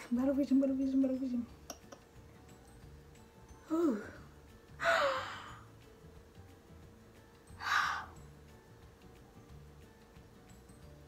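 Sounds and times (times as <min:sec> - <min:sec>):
woman gasping: 0:04.8 - 0:05.6.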